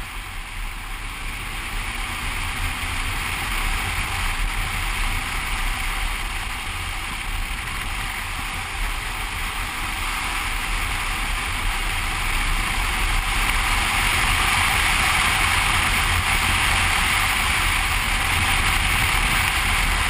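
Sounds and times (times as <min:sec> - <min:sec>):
motorcycle engine rumble: 0:00.0 - 0:20.0
road noise: 0:00.0 - 0:20.0.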